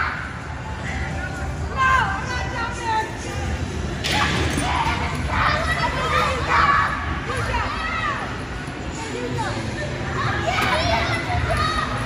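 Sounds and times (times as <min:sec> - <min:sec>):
crowded play hall din: 0:00.0 - 0:12.0
children calling and shouting: 0:04.1 - 0:12.0.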